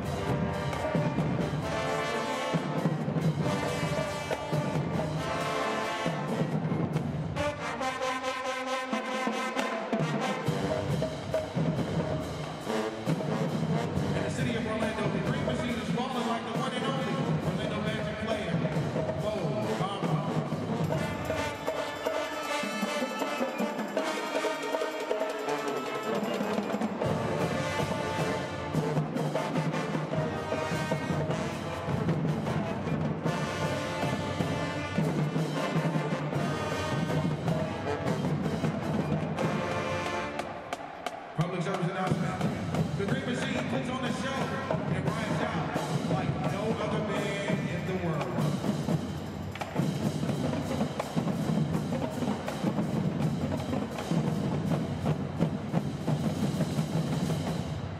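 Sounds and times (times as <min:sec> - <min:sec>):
drumline percussion: 0:00.0 - 0:57.9
marching band playing: 0:00.0 - 0:57.9.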